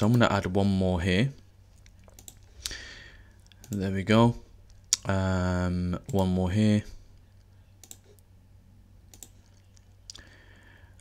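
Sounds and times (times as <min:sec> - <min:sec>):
low steady hum: 0:00.0 - 0:11.0
computer mouse clicks: 0:01.8 - 0:02.5, 0:03.5 - 0:03.8, 0:07.4 - 0:08.2, 0:09.1 - 0:09.9.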